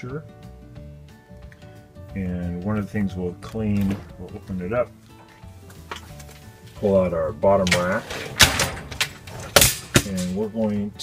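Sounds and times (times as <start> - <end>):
dishwasher rack clanking: 7.6 - 10.3
dishwasher rack rattling: 7.6 - 10.4.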